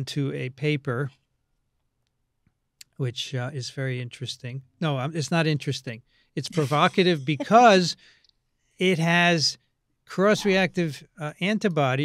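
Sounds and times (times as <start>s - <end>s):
man speaking: 0.0s - 1.1s, 2.8s - 8.0s, 8.8s - 12.0s.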